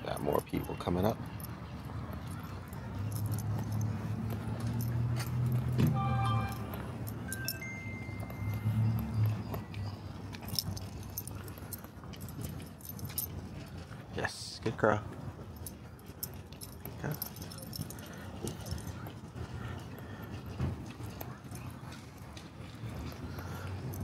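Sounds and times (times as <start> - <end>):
thin steady tone: 0.0 - 13.7
dog collar tags jingling: 0.0 - 14.1, 14.7 - 19.2, 21.0 - 24.0
passing vehicle hum: 1.3 - 11.2.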